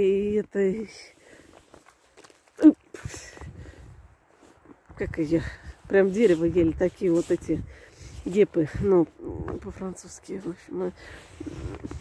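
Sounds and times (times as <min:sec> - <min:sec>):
footsteps in wet snow: 0:00.0 - 0:12.0.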